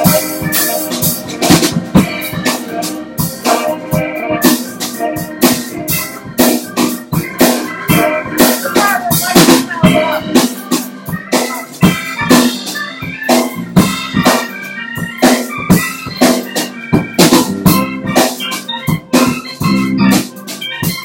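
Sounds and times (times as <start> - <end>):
electric bass: 0.0 - 10.5, 17.0 - 20.3
drum kit beat: 0.0 - 21.0
electric guitar: 0.0 - 21.0
rock band playing: 0.0 - 21.0
sustained organ tones: 0.0 - 21.0.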